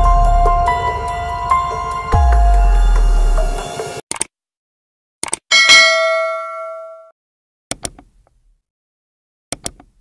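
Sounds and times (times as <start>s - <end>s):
bell ding: 5.5s - 7.1s.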